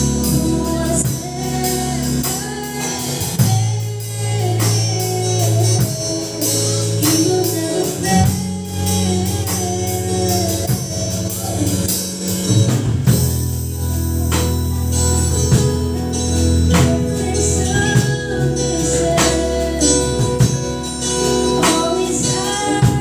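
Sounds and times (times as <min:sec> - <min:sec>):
woman singing into microphone: 0:00.0 - 0:12.6, 0:15.2 - 0:23.0
bass: 0:00.0 - 0:23.0
drums: 0:00.0 - 0:23.0
guitar: 0:00.0 - 0:23.0.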